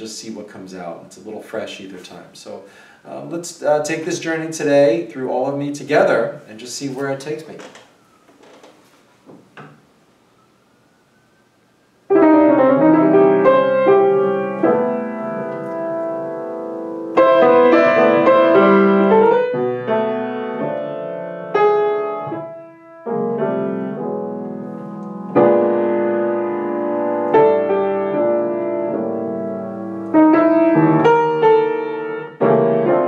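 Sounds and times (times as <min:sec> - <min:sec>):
faint knocks: 0:07.5 - 0:09.9
solo jazz piano: 0:12.1 - 0:33.0.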